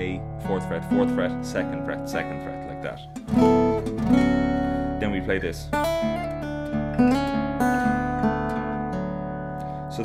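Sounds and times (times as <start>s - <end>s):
acoustic guitar chords ringing: 0.0s - 10.0s.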